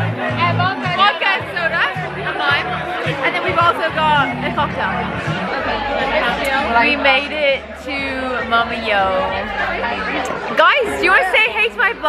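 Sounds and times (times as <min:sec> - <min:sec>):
background music with bass line: 0:00.0 - 0:11.2
chatter of many people: 0:00.0 - 0:12.0.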